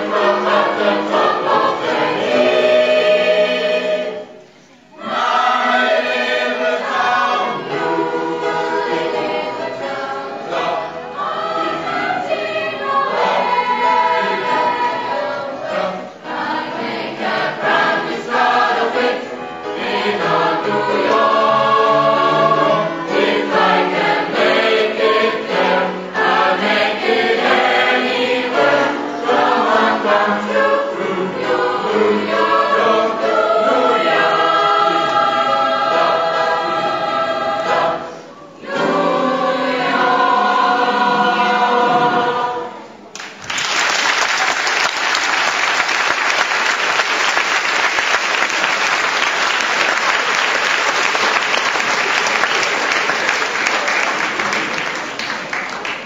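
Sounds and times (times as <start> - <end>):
youth choir singing: 0.0 - 43.1
audience applause: 43.1 - 56.0.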